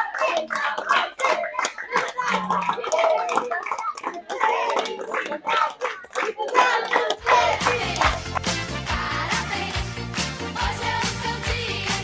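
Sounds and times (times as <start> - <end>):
people clapping: 0.0 - 12.0
voices: 0.6 - 8.0.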